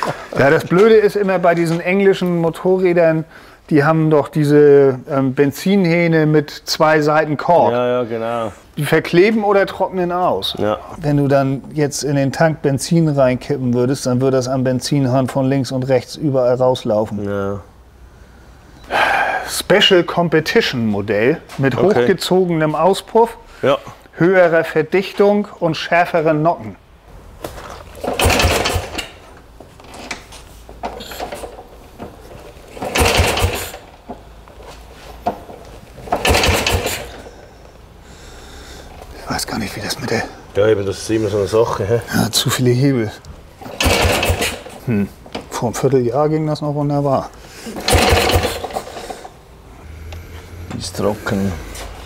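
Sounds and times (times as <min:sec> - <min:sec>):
motorcycle kick-start: 0:27.9 - 0:29.3, 0:29.9 - 0:31.7, 0:32.3 - 0:34.0, 0:35.3 - 0:37.4, 0:43.6 - 0:44.8, 0:47.6 - 0:49.4
steady low hum: 0:33.8 - 0:52.0.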